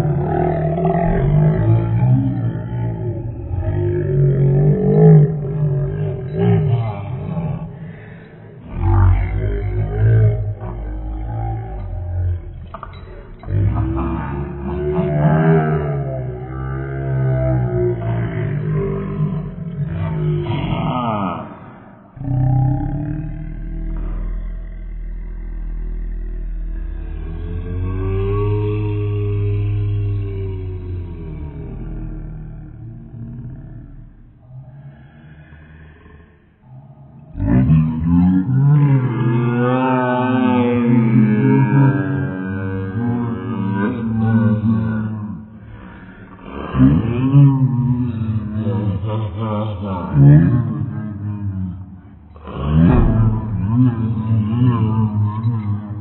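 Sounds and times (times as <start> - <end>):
man growling roars: 0.0 - 12.6, 13.2 - 36.3, 37.1 - 56.0.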